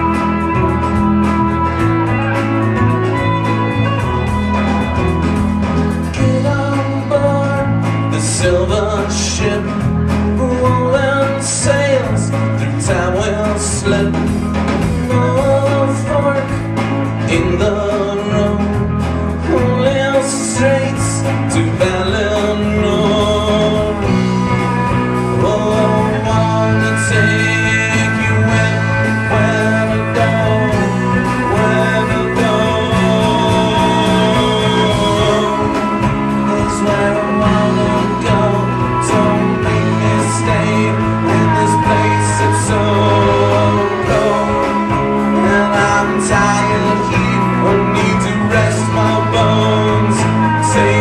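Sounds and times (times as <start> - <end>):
fiddle melody: 0.0 - 7.8, 19.6 - 51.0
country-rock band playing: 0.0 - 51.0.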